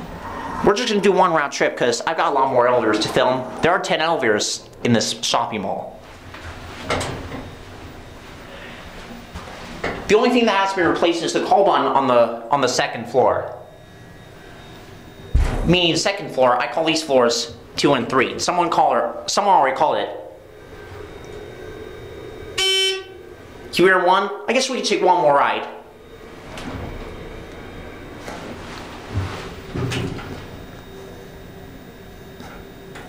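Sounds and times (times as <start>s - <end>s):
elevator running noise: 0.0s - 33.0s
faint steady tones: 0.0s - 33.0s
elevator thump: 15.3s - 15.9s, 28.2s - 30.5s.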